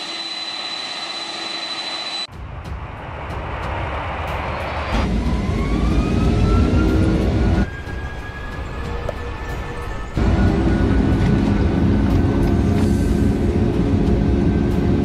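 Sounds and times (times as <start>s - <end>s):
rising engine whine: 0.0s - 15.0s.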